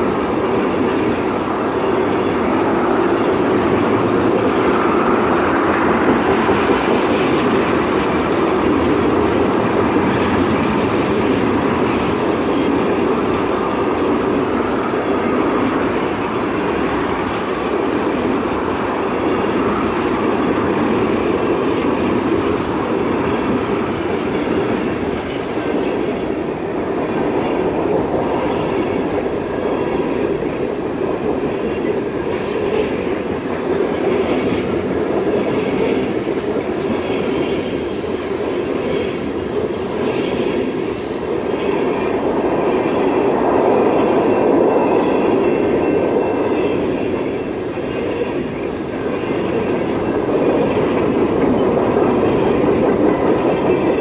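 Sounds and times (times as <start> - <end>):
steel wheels rumbling on rail: 0.0 - 54.0.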